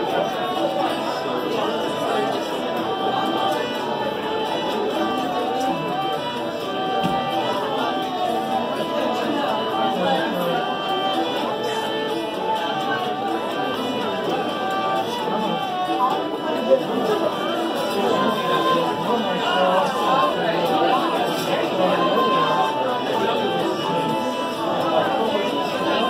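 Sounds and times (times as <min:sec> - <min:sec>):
fiddle: 0:00.0 - 0:26.0
hurdy gurdy: 0:00.0 - 0:26.0
pub chatter: 0:00.0 - 0:26.0
strummed guitar: 0:00.0 - 0:26.0
tenor banjo: 0:00.0 - 0:26.0.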